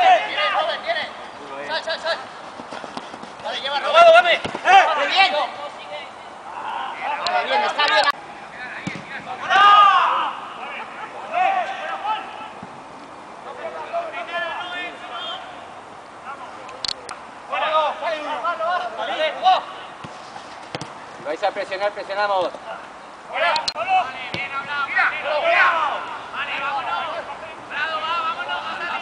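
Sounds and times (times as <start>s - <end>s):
players shouting: 0.0s - 12.6s, 13.4s - 16.6s, 17.4s - 20.0s, 22.2s - 29.0s.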